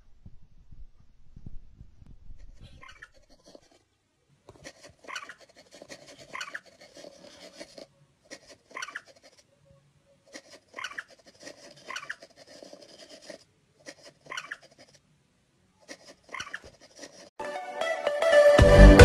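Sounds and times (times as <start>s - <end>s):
game mouse squeaking: 2.4s - 3.8s, 4.5s - 9.5s, 10.1s - 15.0s, 15.8s - 17.3s
paws tapping touchscreen: 4.5s - 9.4s, 10.3s - 15.0s, 15.8s - 17.3s.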